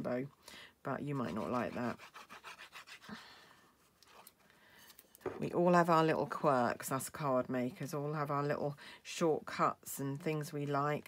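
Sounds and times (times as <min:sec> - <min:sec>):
glue sponge scraping on cardstock: 0:01.1 - 0:03.2.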